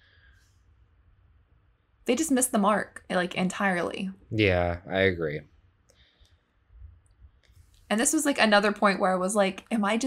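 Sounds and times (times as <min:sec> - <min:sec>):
person speaking: 0:02.1 - 0:05.4.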